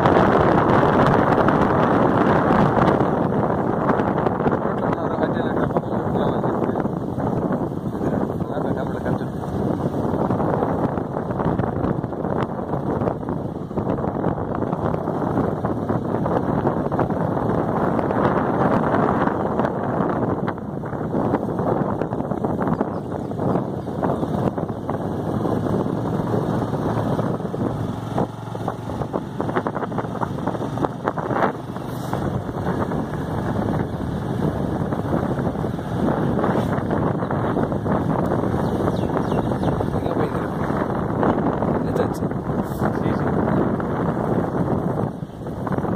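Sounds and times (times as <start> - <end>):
motorcycle engine: 0.0 - 45.9
road noise: 0.0 - 45.9
wind rush on microphone: 0.0 - 45.9.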